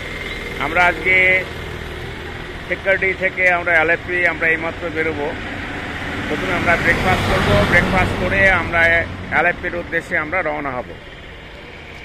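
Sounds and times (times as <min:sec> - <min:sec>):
vehicle engine idling: 0:00.0 - 0:12.0
man speaking: 0:00.6 - 0:01.5, 0:06.3 - 0:11.0.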